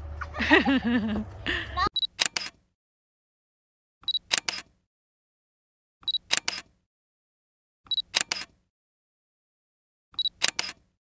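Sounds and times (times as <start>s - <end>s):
camera shutter clicks: 2.1s - 2.6s, 4.1s - 4.7s, 6.1s - 6.7s, 8.0s - 8.6s, 10.2s - 10.8s.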